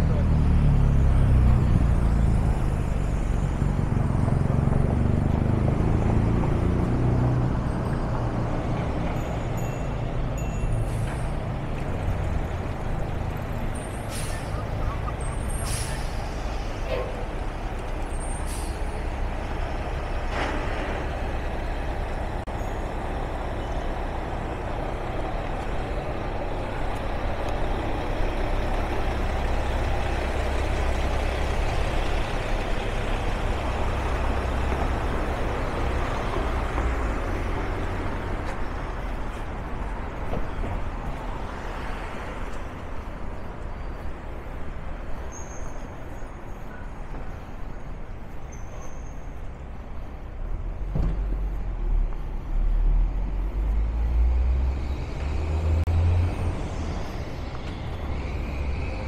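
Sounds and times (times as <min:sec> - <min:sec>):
low engine rumble: 0:00.0 - 0:41.6
vehicles passing: 0:00.0 - 0:59.0.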